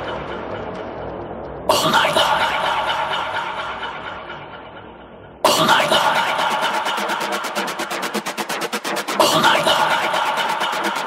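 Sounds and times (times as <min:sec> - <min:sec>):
fast drum roll: 0:06.3 - 0:11.0.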